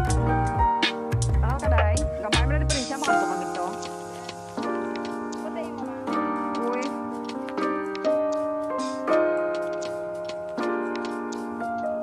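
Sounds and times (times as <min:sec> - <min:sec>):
electronic keyboard chords: 0:00.0 - 0:12.0
light ticking beat: 0:00.0 - 0:12.0.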